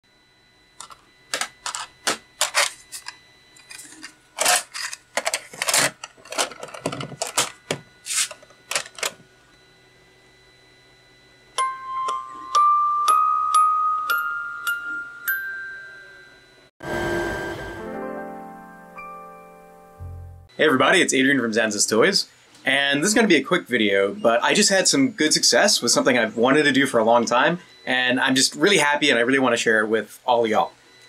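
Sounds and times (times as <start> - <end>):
music box plucked notes: 11.6 - 16.4.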